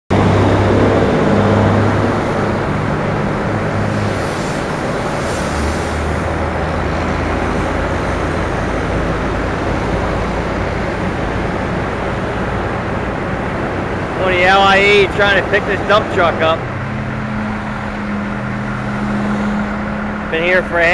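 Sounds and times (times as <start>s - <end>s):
road noise: 0.1s - 20.9s
traffic engines idling: 0.1s - 20.9s.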